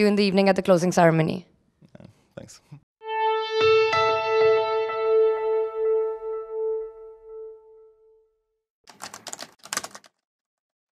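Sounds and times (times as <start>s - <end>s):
outro music: 3.0s - 8.3s.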